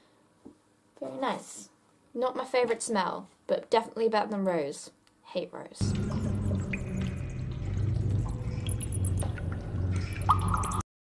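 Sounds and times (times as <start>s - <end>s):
faint water drips: 5.8s - 10.8s
low cave rumble: 5.8s - 10.8s.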